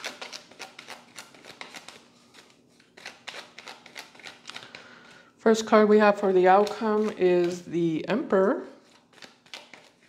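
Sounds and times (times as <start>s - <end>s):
cards being shuffled: 6.2s - 7.7s, 8.8s - 10.0s.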